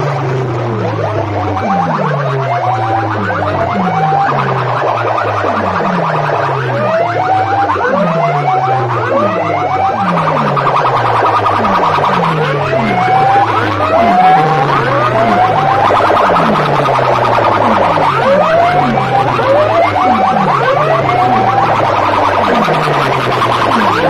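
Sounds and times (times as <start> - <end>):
falling bass swoops: 0.0 - 24.0.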